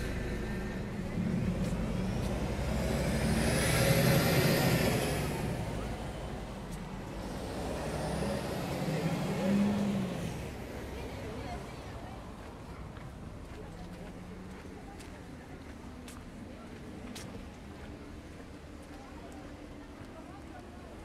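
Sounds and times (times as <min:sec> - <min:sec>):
vehicle driving past: 0:00.0 - 0:11.4.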